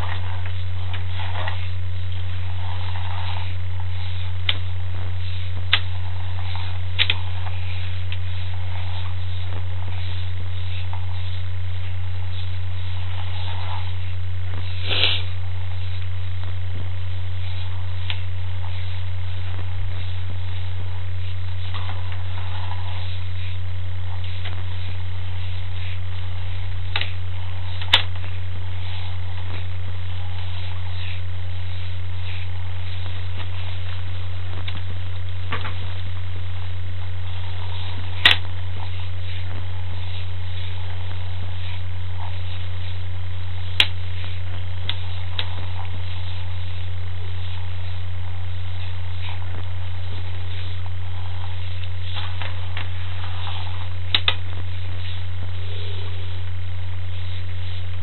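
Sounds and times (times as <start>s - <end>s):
low electrical hum: 0.0s - 58.0s.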